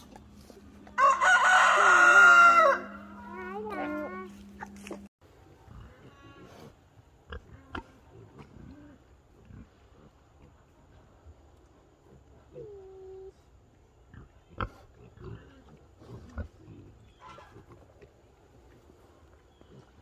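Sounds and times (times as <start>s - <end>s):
pigs rooting: 0.0s - 2.3s
chickens and turkeys calling: 0.0s - 5.0s, 16.5s - 18.0s
pig grunts: 14.1s - 17.8s.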